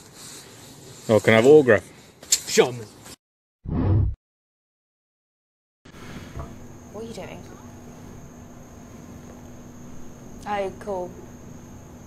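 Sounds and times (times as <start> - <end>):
background hiss: 0.0 - 3.1
woman speaking: 6.9 - 7.6, 10.4 - 11.2.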